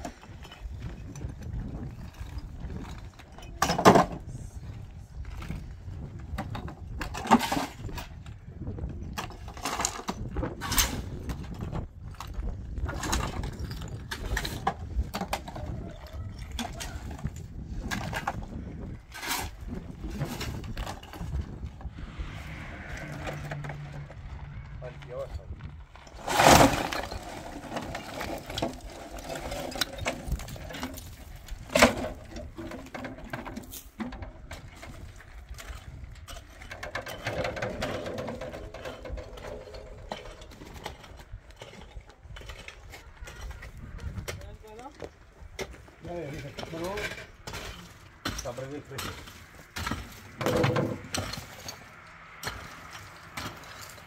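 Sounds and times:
rocks knocking and clattering: 0.0 - 21.9, 24.4 - 54.0.

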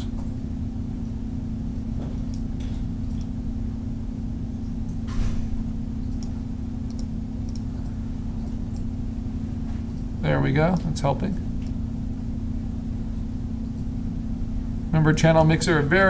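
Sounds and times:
steady low hum: 0.0 - 16.0
computer mouse clicks: 6.0 - 7.7.

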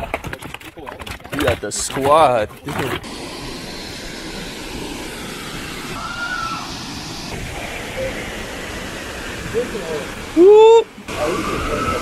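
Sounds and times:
waterfall rushing: 3.0 - 12.0.

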